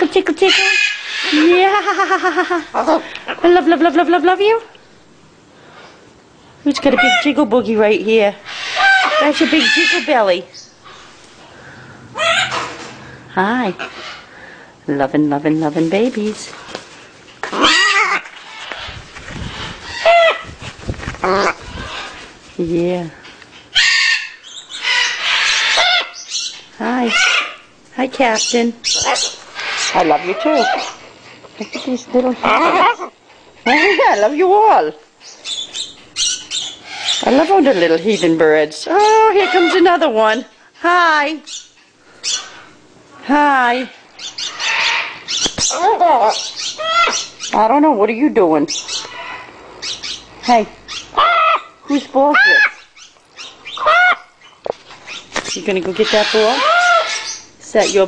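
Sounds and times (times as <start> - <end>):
baby macaws squawking: 0.3 - 3.6, 6.8 - 7.4, 8.5 - 10.4, 12.1 - 12.8, 17.4 - 20.5, 21.2 - 22.2, 23.7 - 31.0, 31.6 - 40.6, 43.7 - 58.0.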